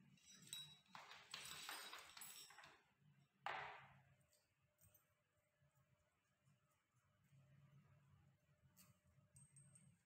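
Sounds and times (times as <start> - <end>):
metal tools and bolts clinking: 0.1 - 2.9.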